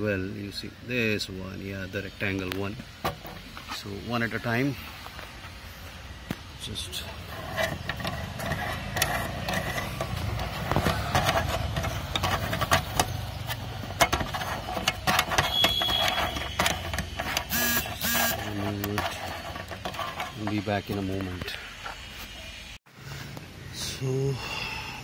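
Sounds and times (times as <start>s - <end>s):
clicks and scraping of hands on screws: 7.3s - 22.1s.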